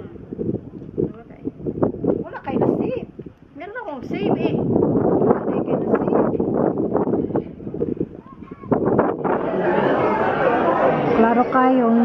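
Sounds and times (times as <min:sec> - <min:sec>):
babble of overlapping voices: 0:00.0 - 0:12.0.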